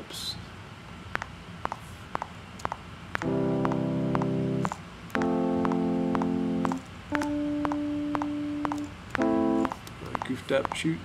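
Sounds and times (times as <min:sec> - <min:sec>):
metronome clicking: 0:01.2 - 0:10.9
electric piano chords: 0:03.1 - 0:10.7.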